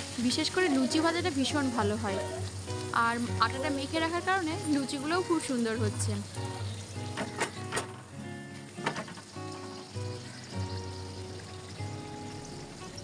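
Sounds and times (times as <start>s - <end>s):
bread sizzling in hot oil: 0.0s - 13.0s
ladle clicking on pan: 6.4s - 9.9s.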